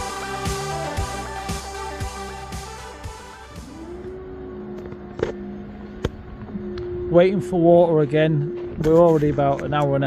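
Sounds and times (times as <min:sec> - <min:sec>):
background music: 0:00.0 - 0:07.6
machine hum rising in pitch: 0:00.0 - 0:09.0.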